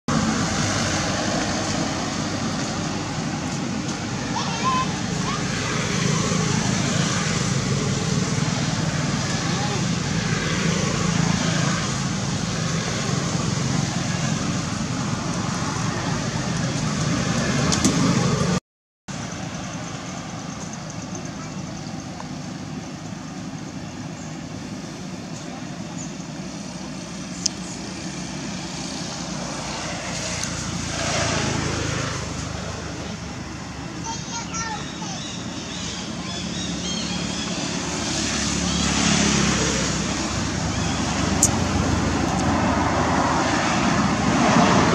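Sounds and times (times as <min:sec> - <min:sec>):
road traffic: 0:00.1 - 0:44.9
vehicle passing: 0:00.1 - 0:44.9.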